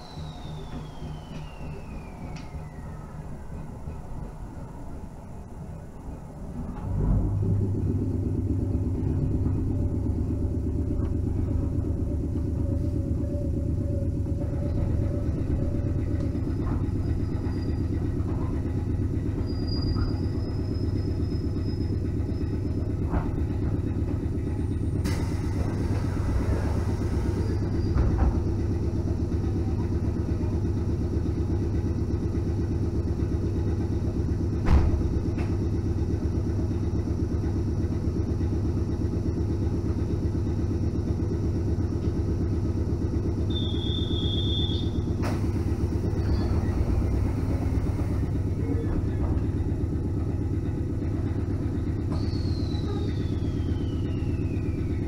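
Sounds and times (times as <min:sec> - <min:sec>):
train equipment humming: 0:00.0 - 0:55.0.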